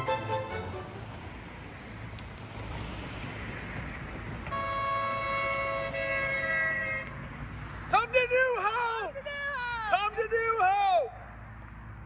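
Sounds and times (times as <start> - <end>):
car passing: 0.0 - 12.0
two-note car horn honk: 4.5 - 7.2.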